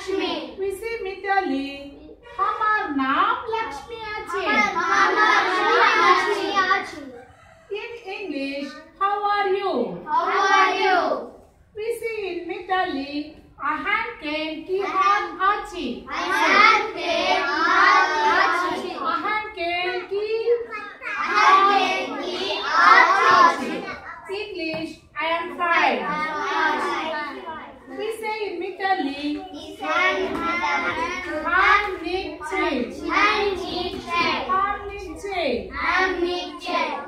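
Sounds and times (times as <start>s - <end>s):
children reciting in chorus: 4.0s - 7.5s, 10.1s - 11.4s, 14.8s - 24.3s, 25.8s - 28.0s, 29.4s - 37.0s.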